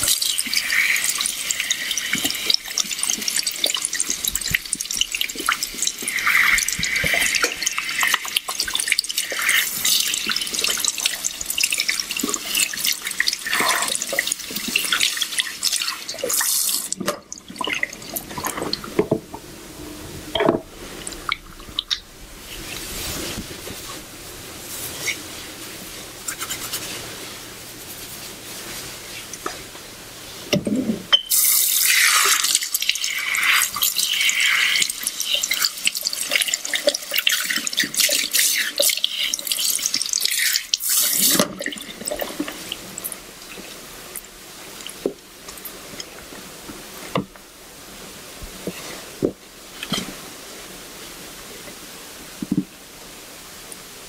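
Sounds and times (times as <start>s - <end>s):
shower sprayer spraying water: 0.0s - 16.9s
water splashing into sink: 0.0s - 19.2s, 30.5s - 43.2s.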